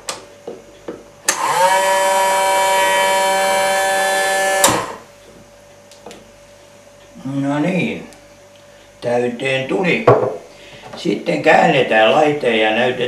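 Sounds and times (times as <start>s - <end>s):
washer pump motor whirring: 1.3s - 5.1s.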